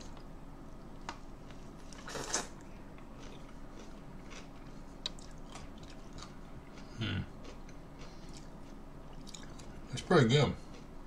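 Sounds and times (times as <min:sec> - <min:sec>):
person biting and chewing pickle: 0:01.9 - 0:08.6.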